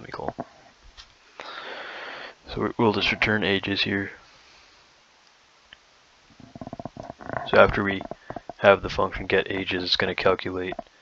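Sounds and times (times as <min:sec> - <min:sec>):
man speaking: 0:00.0 - 0:00.3, 0:02.5 - 0:04.2, 0:07.3 - 0:10.8
faint hiss: 0:00.1 - 0:11.0
man's creaky vocal fry: 0:06.4 - 0:08.7.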